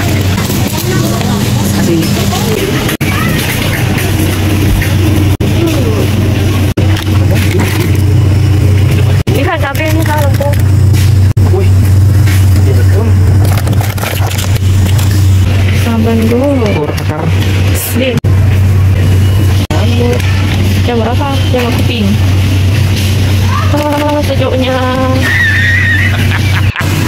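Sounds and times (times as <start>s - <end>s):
loud low hum: 0.0s - 27.0s.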